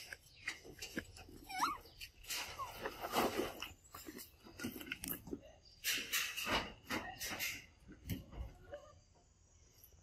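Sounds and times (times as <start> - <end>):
young monkey squeaking: 1.4 - 2.8.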